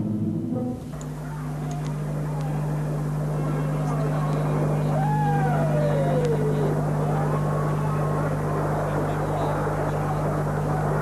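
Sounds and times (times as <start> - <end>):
faint gliding tones: 0.0 - 11.0
steady low drone: 0.0 - 11.0.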